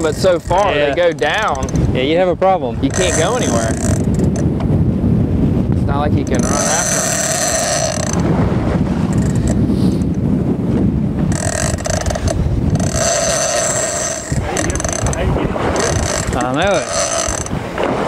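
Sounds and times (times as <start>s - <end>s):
fishing reel drag whining: 0.0s - 1.9s, 2.8s - 4.5s, 6.2s - 8.3s, 9.0s - 10.2s, 11.3s - 17.6s
wind and water rumble: 0.0s - 18.0s.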